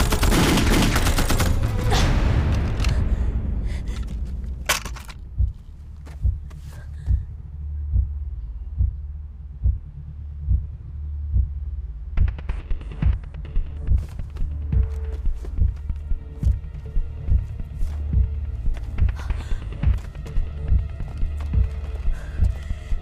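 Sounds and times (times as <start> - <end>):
heartbeat-like pulse: 3.8 - 23.0.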